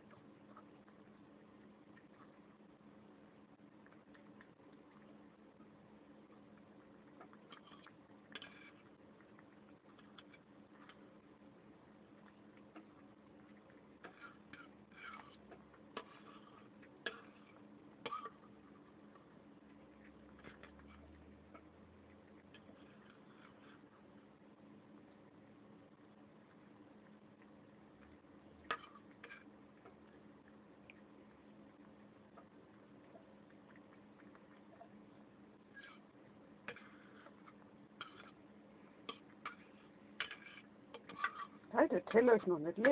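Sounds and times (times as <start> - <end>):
cat eating and licking: 0.0 - 42.9.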